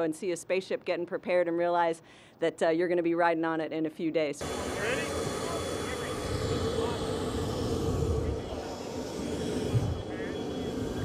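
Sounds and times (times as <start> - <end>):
aircraft engine hum and rumble: 4.4 - 11.0
indistinct voices: 4.4 - 11.0.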